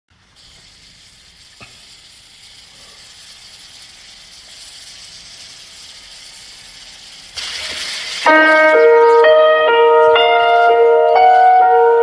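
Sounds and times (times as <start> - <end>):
faint steady hiss: 0.1 - 12.0.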